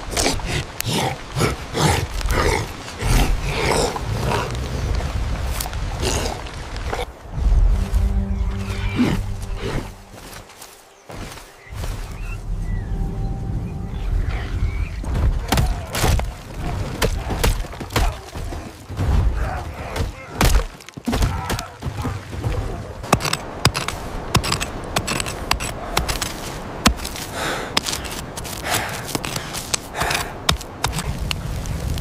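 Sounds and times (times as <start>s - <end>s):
cinematic film music: 6.9s - 15.5s.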